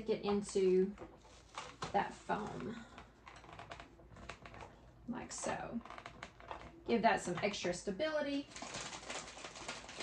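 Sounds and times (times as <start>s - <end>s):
plastic cup clicking and crackling: 8.5s - 10.0s.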